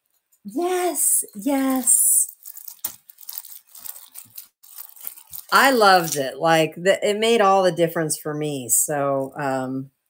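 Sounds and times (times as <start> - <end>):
packaging crinkling and rustling: 1.4 - 6.4.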